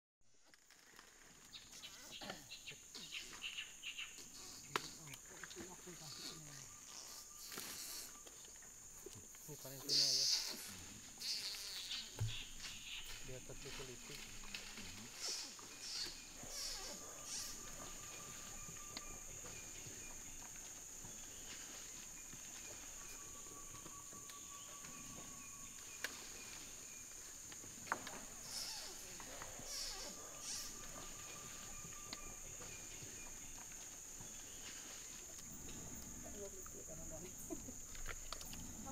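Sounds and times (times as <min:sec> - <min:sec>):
high-pitched insect drone: 0:02.0 - 0:38.9.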